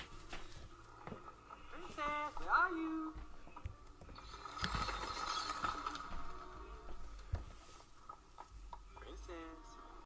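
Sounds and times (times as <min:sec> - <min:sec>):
wooden machinery creaking: 0:03.5 - 0:09.1.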